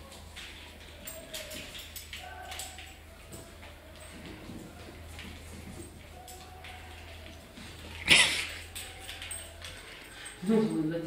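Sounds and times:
cat claws tapping on tile: 0.1s - 10.4s.

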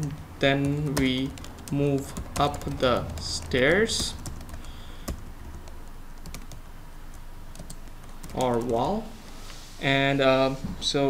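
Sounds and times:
keyboard keys clicking: 0.0s - 6.6s, 7.5s - 8.9s
low steady hum: 0.0s - 11.0s.

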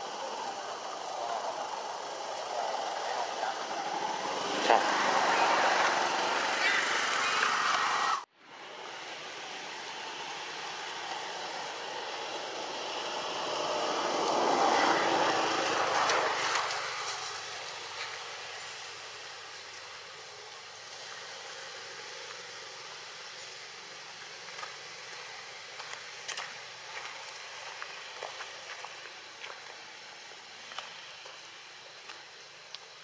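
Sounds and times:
outdoor background hiss: 0.0s - 33.0s.

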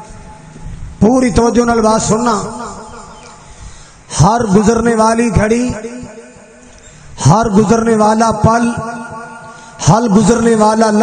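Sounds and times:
man preaching: 1.0s - 3.4s, 4.1s - 6.5s, 7.2s - 11.0s.

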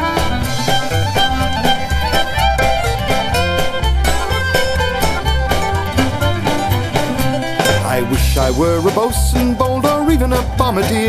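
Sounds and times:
string band playing folk tune: 0.0s - 11.0s.

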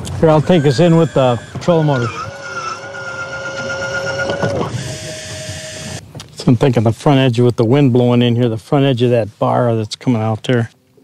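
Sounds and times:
electric motor whining: 0.0s - 6.0s.

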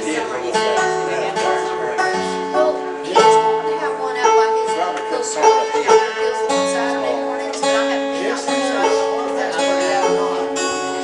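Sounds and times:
string band playing: 0.0s - 11.0s.

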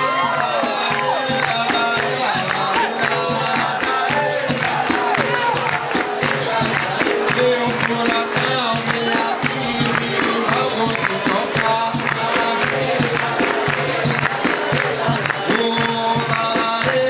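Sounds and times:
hand drum rhythm: 0.0s - 17.0s
people clapping in time: 0.0s - 17.0s
people singing: 0.0s - 17.0s.

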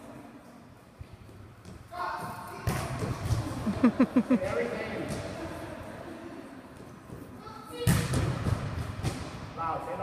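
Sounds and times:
players chatting and laughing: 3.4s - 6.8s.

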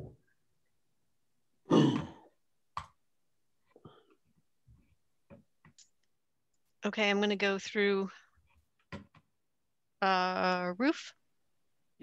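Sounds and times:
person sighing: 1.7s - 2.3s.

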